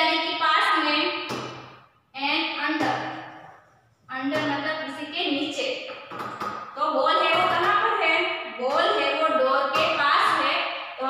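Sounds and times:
woman speaking: 0:02.2 - 0:03.2, 0:04.1 - 0:05.9, 0:06.8 - 0:10.8.

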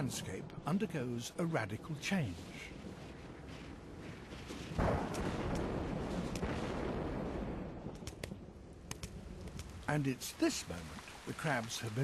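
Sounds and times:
thunderclap and rumble: 0:00.0 - 0:11.0
raindrops tapping on dirt: 0:02.7 - 0:12.0.

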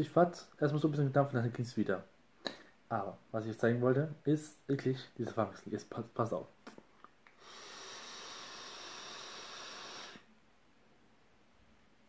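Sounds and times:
hiss of air through vaporizer: 0:07.3 - 0:10.3.

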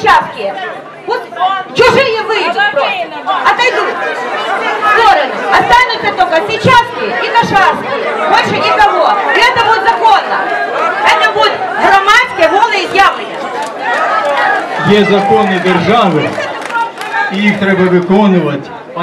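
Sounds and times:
woman speaking into a microphone: 0:00.0 - 0:04.0, 0:04.8 - 0:13.3
crowd chatter: 0:00.0 - 0:19.0.

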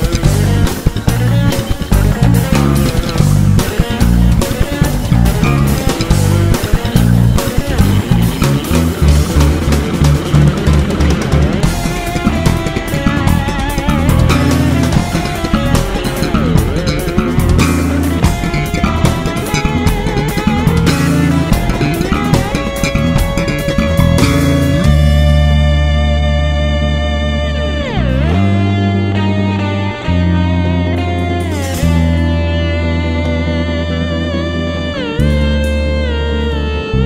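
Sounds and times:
electric bass guitar: 0:00.0 - 0:37.0.

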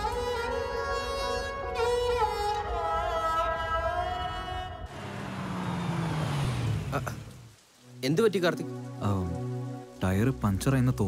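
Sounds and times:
heavy rain pouring: 0:04.0 - 0:11.0
car engine approaching: 0:04.2 - 0:07.7.

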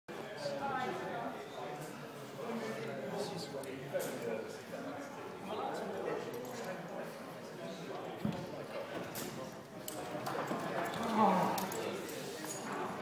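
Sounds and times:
indistinct chatter of people: 0:00.1 - 0:13.0.

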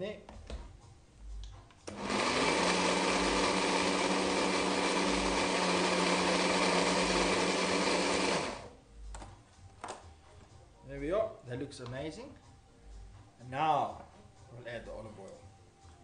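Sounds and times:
stick blender running: 0:01.9 - 0:08.7.

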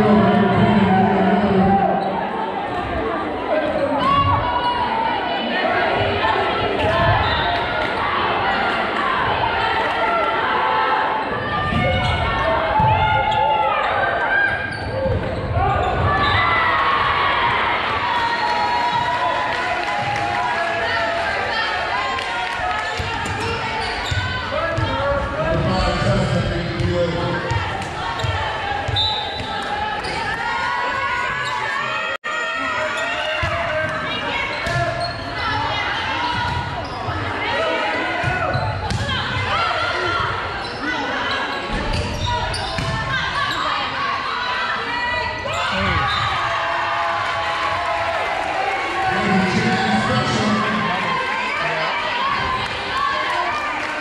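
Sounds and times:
voices echoing in gym: 0:00.0 - 0:54.0.

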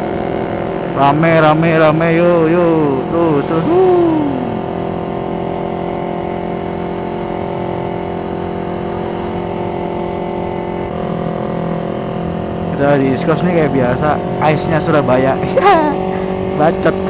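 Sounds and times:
motorcycle engine cruising: 0:00.0 - 0:17.0.

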